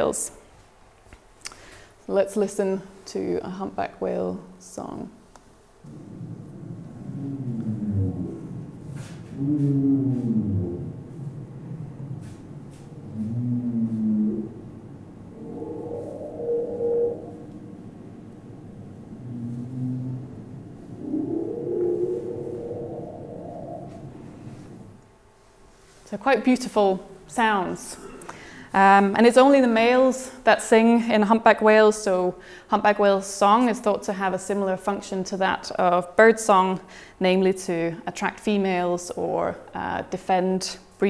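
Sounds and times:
whale song over loudspeakers: 5.9 - 25.0.

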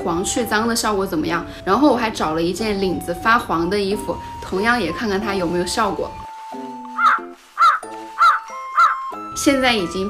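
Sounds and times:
light background music: 0.0 - 10.0
cartoon crow cawing: 7.0 - 9.1.

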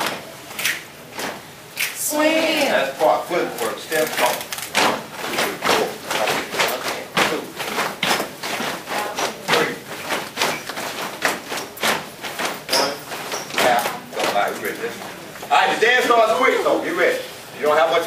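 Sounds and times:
people talking: 2.0 - 7.7, 8.9 - 9.9, 12.7 - 18.0
feet stomping on hard floor: 4.7 - 14.4.

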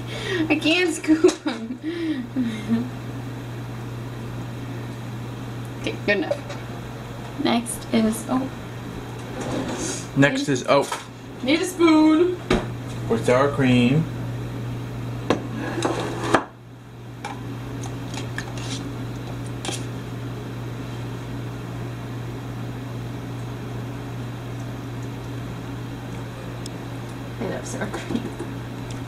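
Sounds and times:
steady low hum: 0.0 - 29.0.

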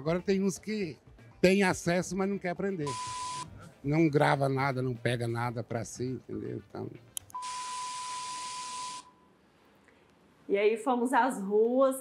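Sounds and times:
steady high beep: 2.9 - 3.5, 7.4 - 9.4.

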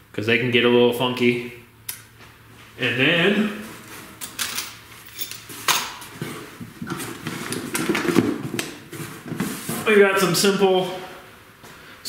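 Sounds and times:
parts rummaged in cardboard box: 5.2 - 9.9.

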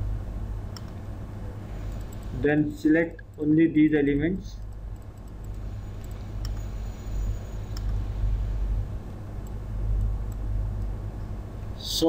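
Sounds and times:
faint clicks: 0.7 - 1.0, 1.9 - 2.3, 4.6 - 6.8, 7.7 - 8.0, 9.4 - 11.0.

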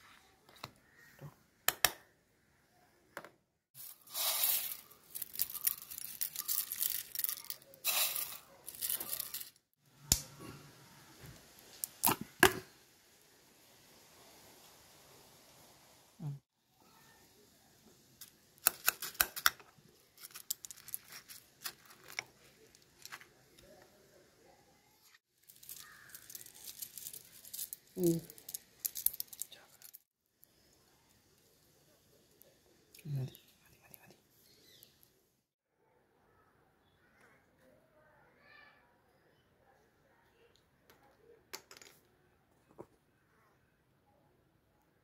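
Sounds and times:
dry cornflakes rustling: 3.8 - 9.6, 20.1 - 23.3, 25.4 - 30.0.

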